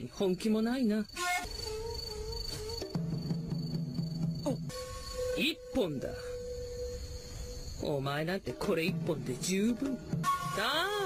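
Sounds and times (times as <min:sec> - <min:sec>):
crickets chirping: 0:00.0 - 0:11.0.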